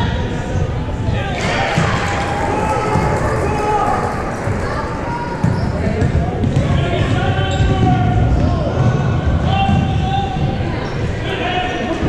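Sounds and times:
echoing shouting voices: 1.2 - 6.1.

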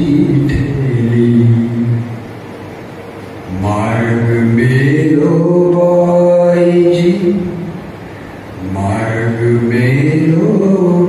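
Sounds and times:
man singing unaccompanied: 0.0 - 2.2, 3.5 - 7.8, 8.6 - 11.0.

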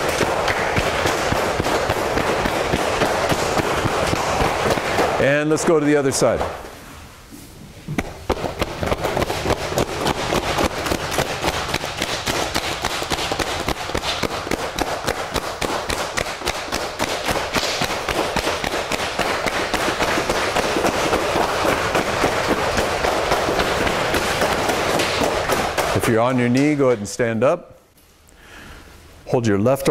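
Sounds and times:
cupped hands slapping a leg: 0.0 - 5.4, 7.9 - 26.8.

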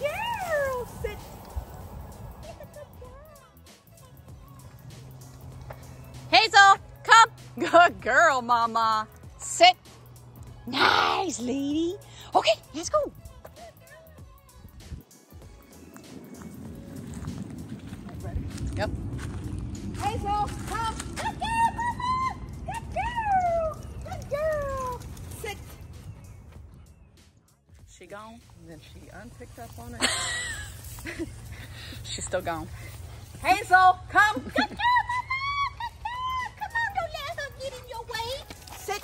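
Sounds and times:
wind rumbling on microphone: 0.0 - 3.5, 15.9 - 27.1
running footsteps: 0.0 - 10.6, 12.4 - 39.0.

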